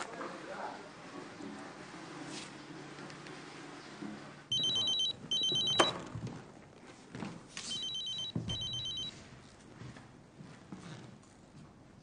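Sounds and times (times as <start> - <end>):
telephone warbling ring: 4.5 - 6.0, 7.7 - 9.1.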